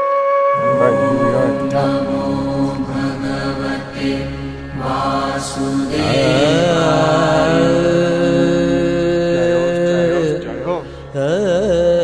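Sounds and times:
sustained drone: 0:00.6 - 0:11.5
person chanting mantra: 0:00.6 - 0:12.0.

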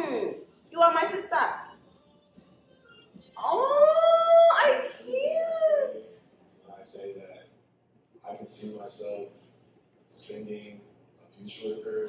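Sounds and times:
woman squealing excitedly: 0:03.4 - 0:06.0.

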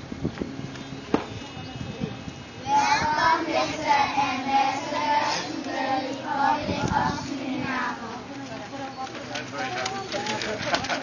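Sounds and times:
children chattering and calling out: 0:02.6 - 0:11.0.

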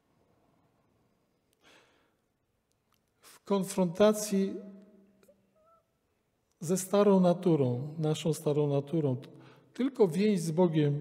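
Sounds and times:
faint short breath: 0:01.6 - 0:02.2.

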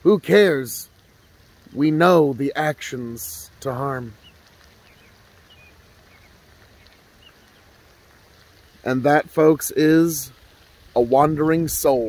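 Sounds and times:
fountain water rushing: 0:00.0 - 0:12.0
bird chirps: 0:03.8 - 0:07.8.

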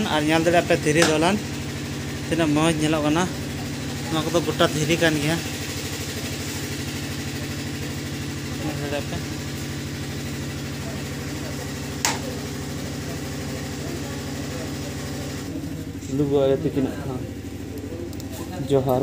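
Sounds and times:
engine idling hum: 0:00.0 - 0:19.0.

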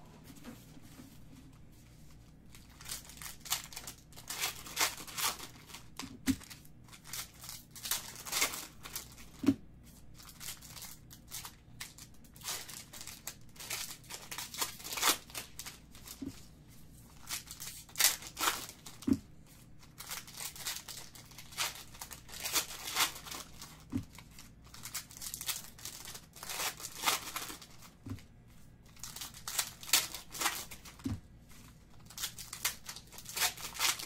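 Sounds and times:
foil wrapper tearing and crinkling: 0:02.5 - 0:09.4, 0:10.2 - 0:16.2, 0:17.1 - 0:19.1, 0:19.8 - 0:28.0, 0:28.9 - 0:34.0.

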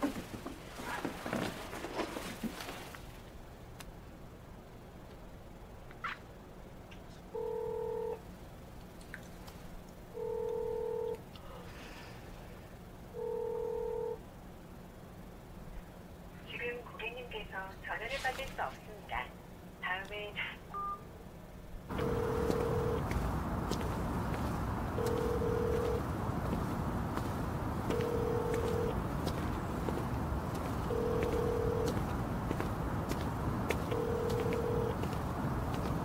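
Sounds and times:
steady background noise: 0:00.0 - 0:36.0
telephone ringback tone: 0:07.4 - 0:08.2, 0:10.2 - 0:11.1, 0:13.2 - 0:14.2, 0:21.9 - 0:23.0, 0:25.0 - 0:26.0, 0:27.9 - 0:29.0, 0:30.9 - 0:32.0, 0:33.9 - 0:35.1
recorded voice message: 0:16.5 - 0:20.6.

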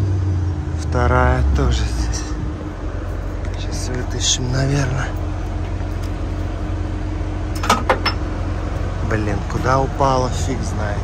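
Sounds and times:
steady low drone: 0:00.0 - 0:11.0.

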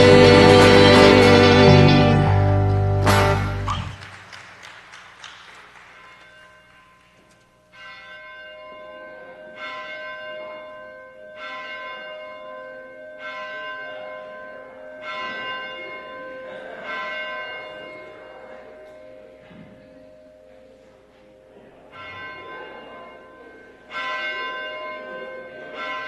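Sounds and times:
bell tolling: 0:00.0 - 0:04.2, 0:05.7 - 0:26.0.

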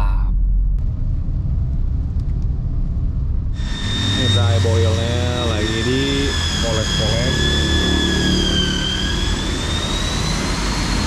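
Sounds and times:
car cabin engine and road rumble: 0:00.0 - 0:03.6.

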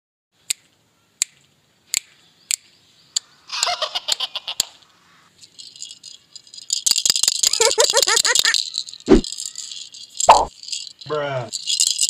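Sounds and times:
plastic rattle shaken: 0:05.4 - 0:12.0.

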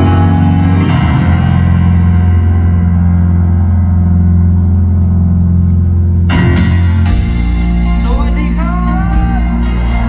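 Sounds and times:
grand piano chord ringing: 0:00.0 - 0:10.0.

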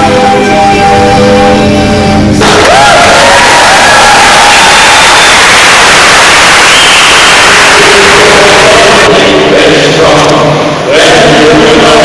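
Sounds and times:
loud hiss-like noise: 0:02.0 - 0:12.0.

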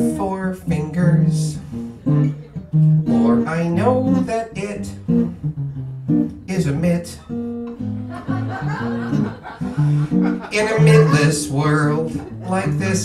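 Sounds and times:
man singing in puppet voice: 0:00.0 - 0:01.6, 0:03.1 - 0:05.0, 0:06.5 - 0:07.3, 0:10.5 - 0:13.0
acoustic guitar accompaniment: 0:00.0 - 0:13.0.

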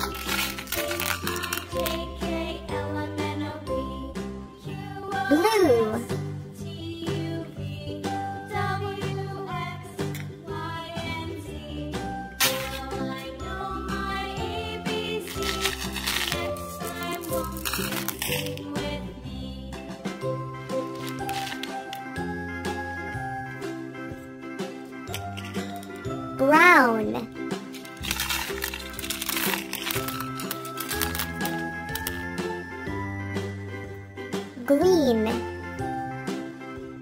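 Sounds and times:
candies rattling into plastic tub: 0:00.0 - 0:02.3, 0:12.4 - 0:13.2, 0:15.1 - 0:19.0, 0:20.7 - 0:22.4, 0:25.0 - 0:32.5
instrumental nursery-rhyme music: 0:00.0 - 0:37.0.

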